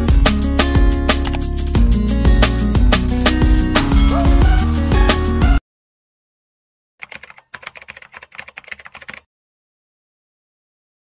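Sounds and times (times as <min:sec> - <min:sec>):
rapid clicks like typing: 0:07.0 - 0:09.3.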